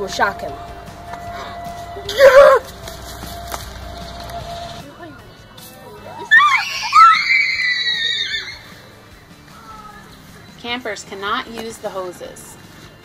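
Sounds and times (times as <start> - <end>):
person screaming: 2.1 - 2.7.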